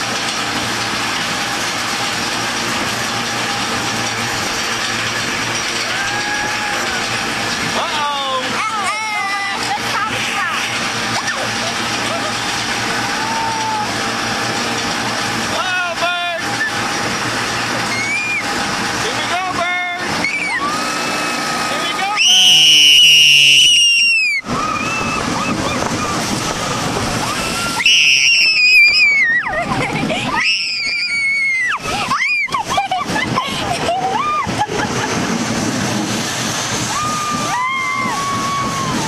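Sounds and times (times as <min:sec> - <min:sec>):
rollercoaster ride noise: 0:00.0 - 0:39.0
yells and whoops: 0:05.8 - 0:07.2, 0:13.0 - 0:14.0, 0:22.1 - 0:26.2, 0:27.2 - 0:29.6, 0:30.3 - 0:32.8, 0:36.9 - 0:39.0
riders screaming: 0:05.8 - 0:08.2, 0:11.1 - 0:14.2, 0:17.8 - 0:18.6, 0:20.0 - 0:21.3, 0:22.0 - 0:34.7, 0:36.8 - 0:39.0.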